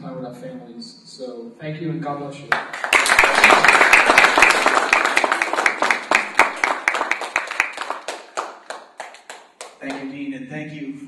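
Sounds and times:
audience applauding: 2.5 - 10.1.

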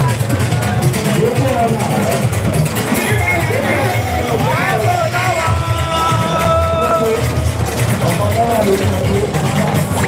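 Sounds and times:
crowd noise: 0.0 - 10.0
loud amplified party music: 0.0 - 10.0.

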